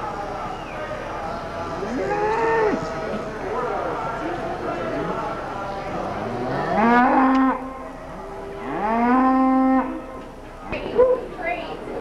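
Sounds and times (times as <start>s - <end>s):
cattle mooing: 6.0s - 7.7s, 8.5s - 10.1s.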